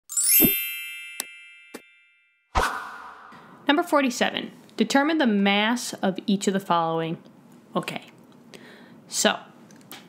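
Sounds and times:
bright bell-like chime: 0.1 - 2.5.

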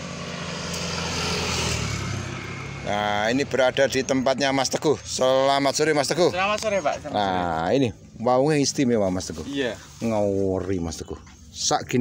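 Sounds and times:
engine passing by: 0.0 - 7.7.

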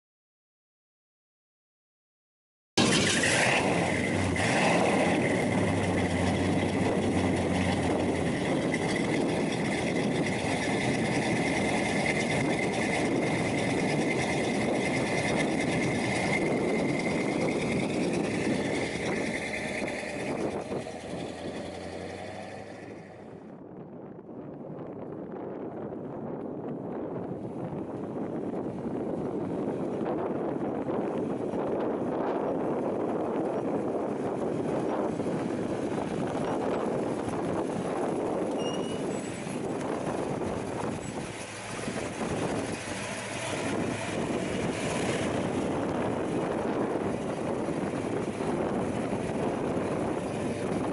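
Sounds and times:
car engine running: 2.8 - 23.4, 28.1 - 50.9.

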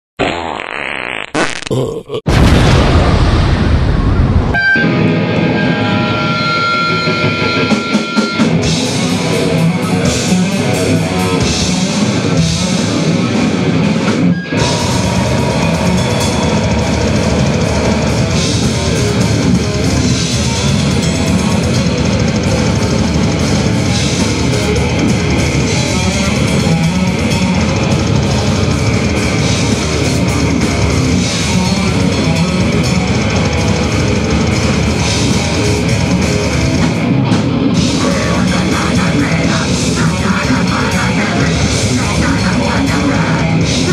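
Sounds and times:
distorted electric guitars: 0.2 - 43.9
loud noisy burst: 1.3 - 6.9
metal band playing: 2.3 - 43.9
electric guitar note ringing: 4.5 - 8.6, 14.3 - 18.4
drums and cymbals: 5.4 - 43.9.

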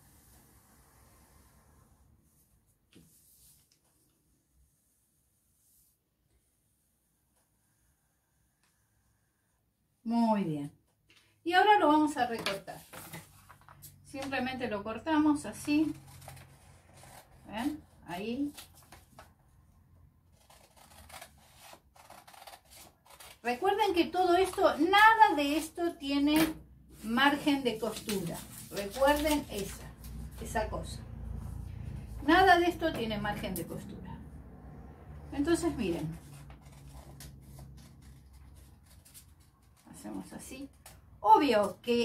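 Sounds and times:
paper rustling: 12.3 - 13.9, 18.4 - 19.4, 20.3 - 23.4, 27.0 - 30.5
scissors snipping paper: 20.3 - 23.6.

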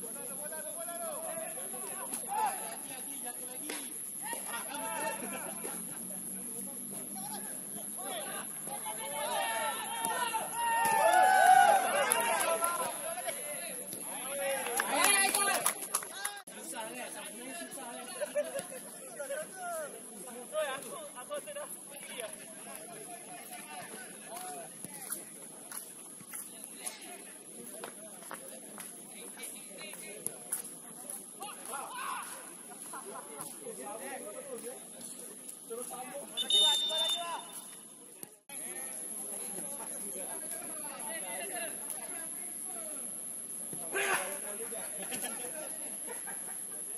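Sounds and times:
people shouting: 8.2 - 12.9
shrill whistle blast: 36.4 - 37.8.

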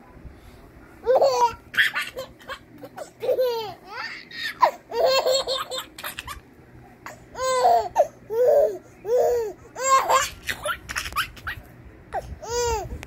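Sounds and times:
toddler laughing: 1.0 - 6.4, 7.4 - 11.7.

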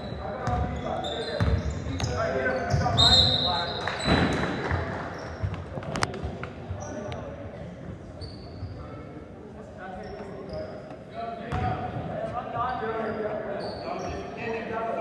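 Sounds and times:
sneaker squeaks: 0.0 - 7.3, 7.9 - 9.2, 10.0 - 14.6
voices of players and spectators: 0.0 - 15.0.

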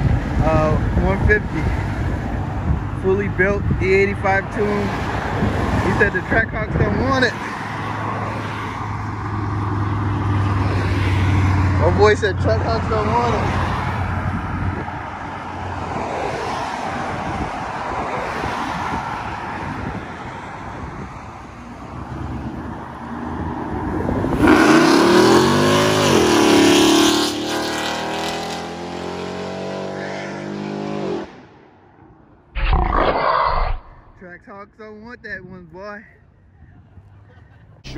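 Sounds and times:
road traffic passing: 0.0 - 34.4, 35.6 - 37.9.

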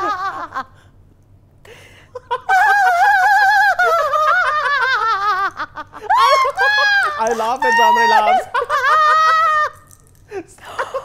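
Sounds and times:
person squealing with laughter: 2.3 - 5.1, 6.0 - 10.0.

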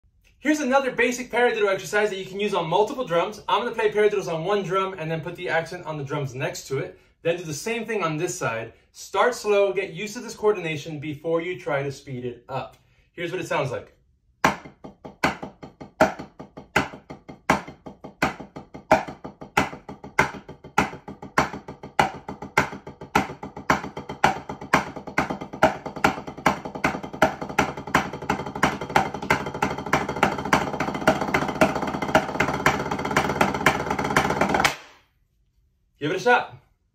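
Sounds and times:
drumsticks tapping practice pad: 14.4 - 35.0.

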